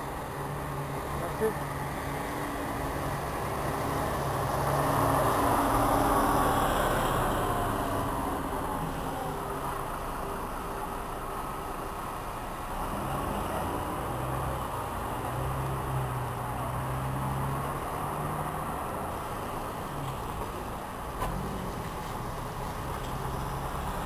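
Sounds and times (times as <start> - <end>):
bus diesel engine: 0.0 - 24.0
tyres hissing on wet road: 0.1 - 24.0.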